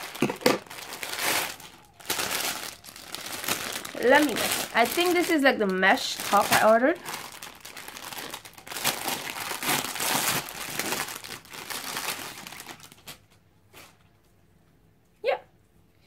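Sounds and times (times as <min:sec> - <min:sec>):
plastic bag crinkling: 0:00.0 - 0:13.4.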